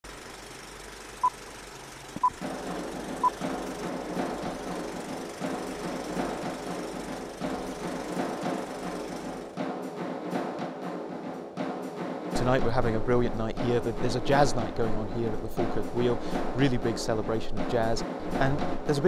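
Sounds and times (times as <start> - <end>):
faint steady hum: 0.0 - 9.4.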